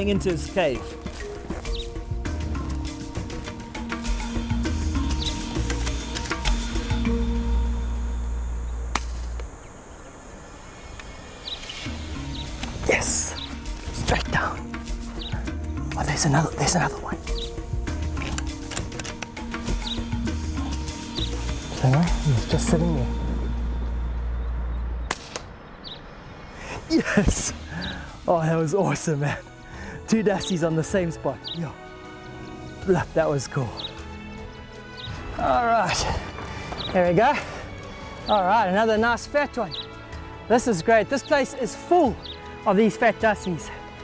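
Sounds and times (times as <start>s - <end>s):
music with beat and deep bass: 0.0s - 9.3s, 11.9s - 25.1s
sharp crack: 8.9s - 9.6s, 25.0s - 25.7s
air rifle shot: 25.1s - 25.6s.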